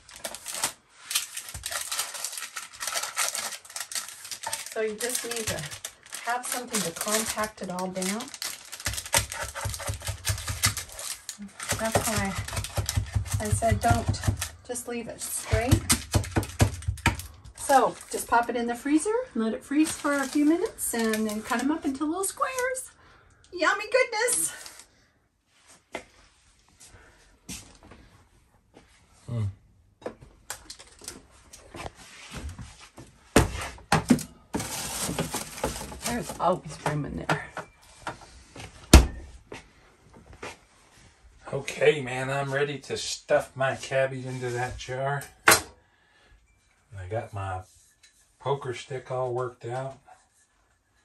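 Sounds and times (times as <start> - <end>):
wooden stomper tapping mixture: 8.7 - 11.0, 11.6 - 14.6, 15.4 - 17.6
freezer door knocking: 11.8 - 14.6, 15.5 - 17.3.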